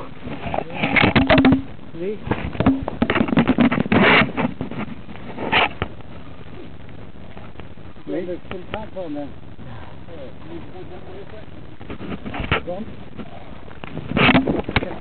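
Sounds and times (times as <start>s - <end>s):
camera tumbling to ground: 0.0s - 9.6s, 10.4s - 15.0s.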